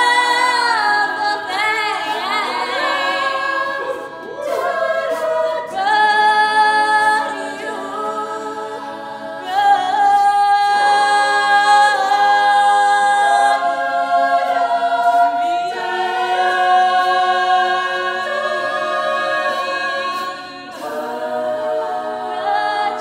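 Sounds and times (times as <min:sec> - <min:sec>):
backing singers holding chords: 0:00.0 - 0:23.0.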